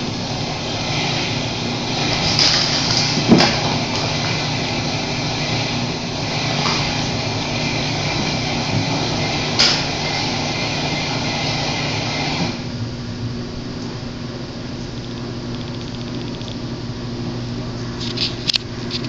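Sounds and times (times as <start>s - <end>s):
faint hum: 0.0s - 19.0s.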